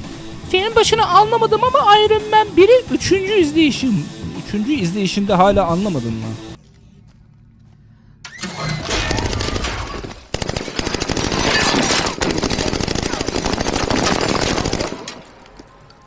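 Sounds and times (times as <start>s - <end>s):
automatic rifle fire: 8.9s - 15.4s.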